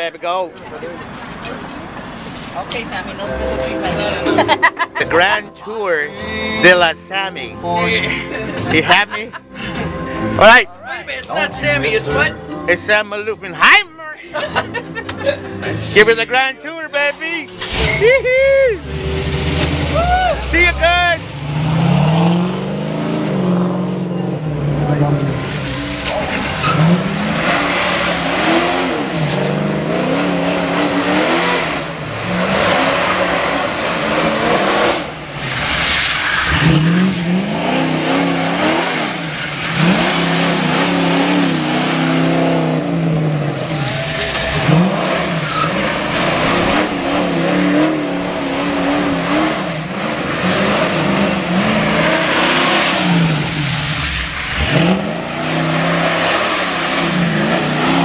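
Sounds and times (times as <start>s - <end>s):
car engine revving: 0.0s - 13.8s, 14.4s - 58.0s
tyres squealing and skidding: 17.1s - 22.4s, 25.3s - 31.6s, 32.2s - 42.4s, 43.5s - 58.0s.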